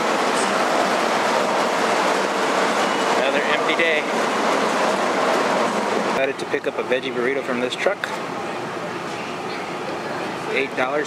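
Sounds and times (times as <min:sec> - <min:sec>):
loud steady rushing noise: 0:00.0 - 0:11.0.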